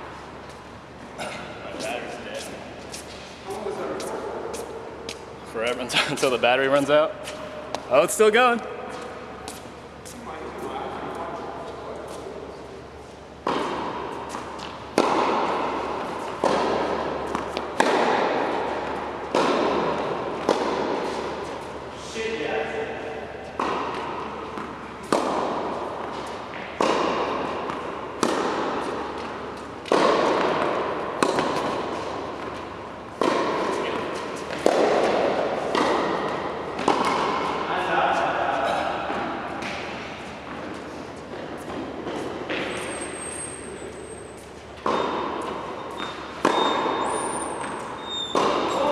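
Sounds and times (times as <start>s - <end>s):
tennis balls hit with echo: 7.1s - 8.0s, 10.9s - 21.9s, 22.5s - 48.9s.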